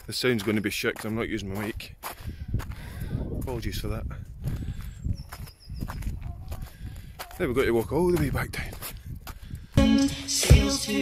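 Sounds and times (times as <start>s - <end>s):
wind buffeting microphone: 0.0s - 9.8s
footsteps: 0.0s - 9.9s.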